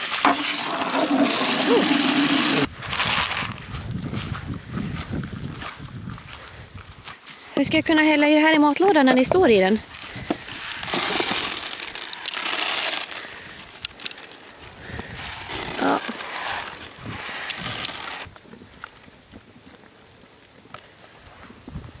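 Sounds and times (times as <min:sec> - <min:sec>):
dry feed pouring from scoop: 0:00.2 - 0:03.4, 0:10.5 - 0:14.5.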